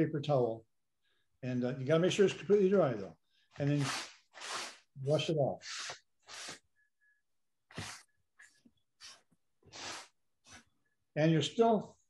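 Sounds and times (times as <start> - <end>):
paper towel rubbing on paper: 3.6 - 6.6, 7.7 - 8.1, 9.0 - 10.7.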